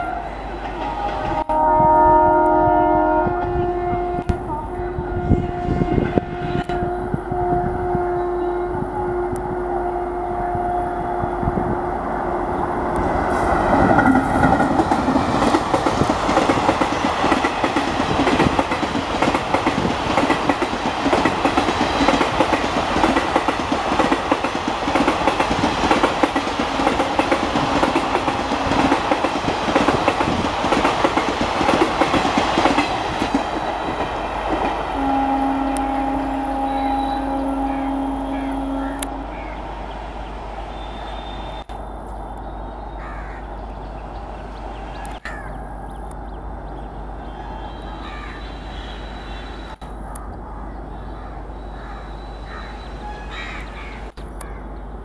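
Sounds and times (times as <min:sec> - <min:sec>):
locomotive horn blast: 0:00.0 - 0:13.0, 0:34.8 - 0:39.7, 0:40.7 - 0:41.7
train rumbling past: 0:00.0 - 0:55.0.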